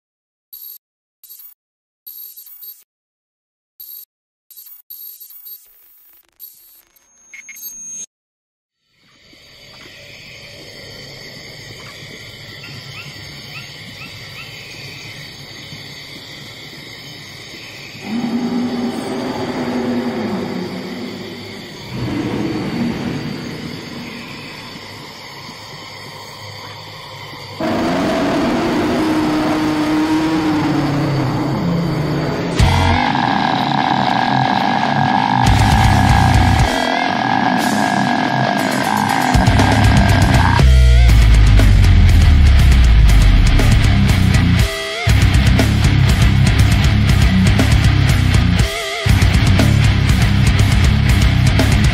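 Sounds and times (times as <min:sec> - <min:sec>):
dense ambient layer: 0:16.4 - 0:51.9
low wavering moaning tones: 0:18.0 - 0:24.6.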